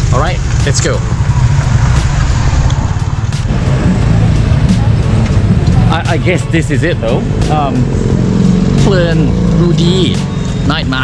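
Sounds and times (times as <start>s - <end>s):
cars going by: 0.0s - 11.0s
low traffic rumble: 0.0s - 11.0s
motorbikes going by: 0.0s - 11.0s.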